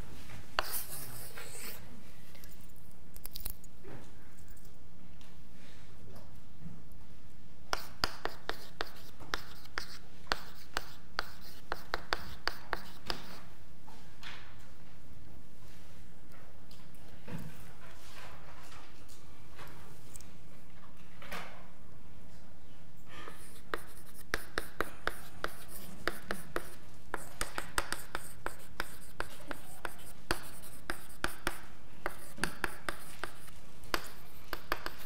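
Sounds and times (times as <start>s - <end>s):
chalk tapping and scraping: 0.4s - 2.7s, 7.7s - 13.5s, 23.2s - 35.0s.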